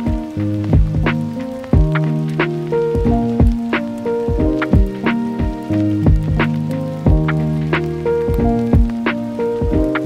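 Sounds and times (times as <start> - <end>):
chill instrumental music: 0.0 - 10.0.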